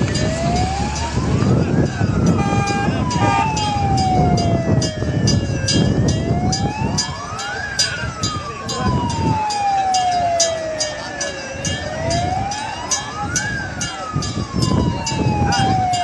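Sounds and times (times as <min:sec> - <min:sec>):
fire engine siren wailing: 0:00.0 - 0:16.0
higher siren tone: 0:00.0 - 0:16.0.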